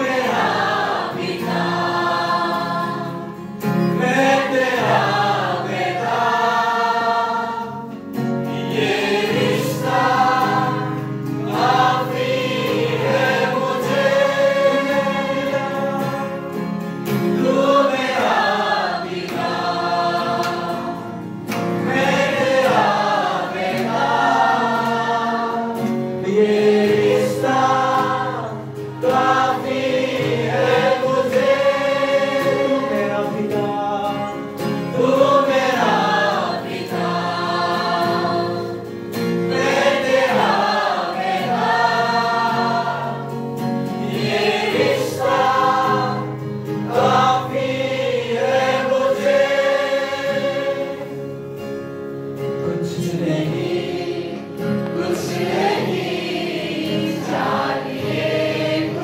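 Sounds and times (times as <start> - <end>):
instrumental accompaniment: 0.0 - 59.0
voices singing worship song: 0.0 - 59.0.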